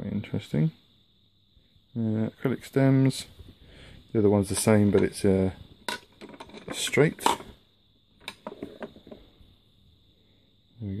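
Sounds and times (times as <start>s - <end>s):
wooden pipes clicking and knocking: 5.9s - 7.6s, 8.2s - 9.2s.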